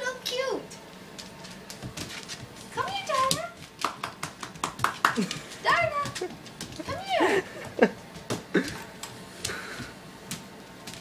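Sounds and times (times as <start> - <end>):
sharp clicks and taps: 2.8 - 6.8.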